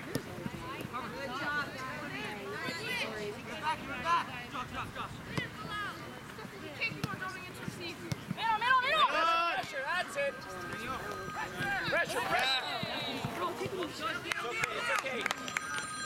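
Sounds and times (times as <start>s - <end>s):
players and spectators shouting: 8.4s - 15.3s.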